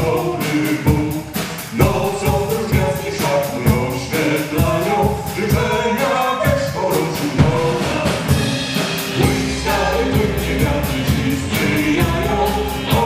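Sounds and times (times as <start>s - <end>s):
drum kit beat: 0.0s - 13.0s
person singing: 0.0s - 13.0s
electric guitar: 7.4s - 13.0s.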